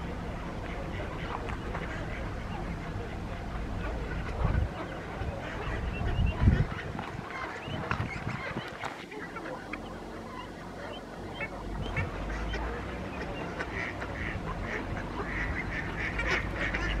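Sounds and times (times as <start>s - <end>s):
ducks calling: 0.0s - 17.0s.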